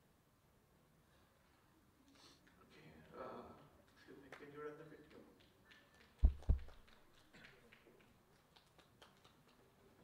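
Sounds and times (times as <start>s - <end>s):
faint room sound: 0.0s - 10.0s.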